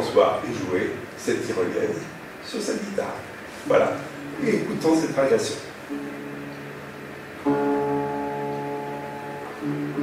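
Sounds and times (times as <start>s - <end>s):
classical guitar harmonics: 3.6s - 10.0s.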